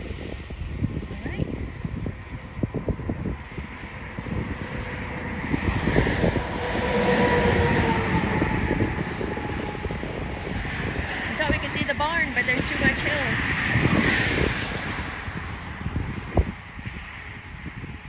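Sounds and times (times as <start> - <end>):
wind buffeting microphone: 0.0 - 18.0
vehicle passing: 1.3 - 17.8.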